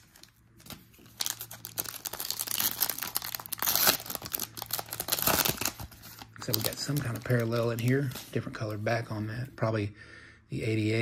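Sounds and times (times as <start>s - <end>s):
foil wrapper crinkling and tearing: 0.0s - 8.7s.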